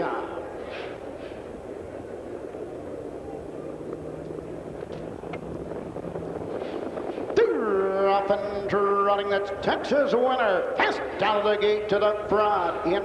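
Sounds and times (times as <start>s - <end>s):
racetrack background noise: 0.0s - 13.0s
race announcer calling: 7.3s - 13.0s.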